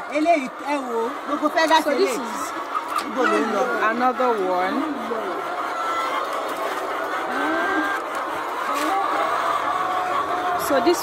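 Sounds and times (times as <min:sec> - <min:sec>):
hens clucking and cackling: 0:00.0 - 0:11.0.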